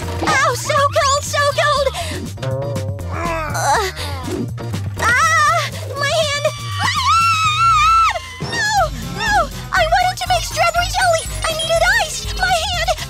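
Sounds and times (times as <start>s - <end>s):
background music: 0.0s - 13.0s
woman's wordless vocal cries: 3.0s - 4.4s, 5.2s - 9.5s.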